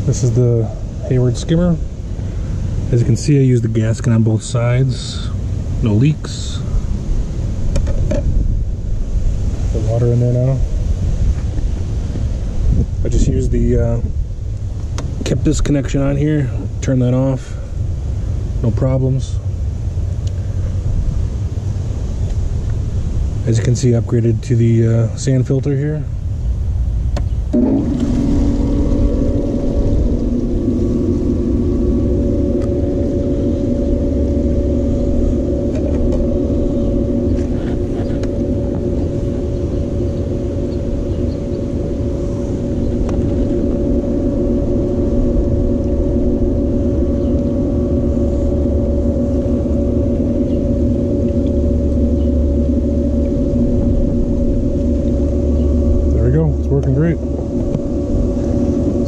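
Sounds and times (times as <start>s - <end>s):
low rumble: 0.0s - 59.0s
pump motor humming: 27.4s - 59.0s.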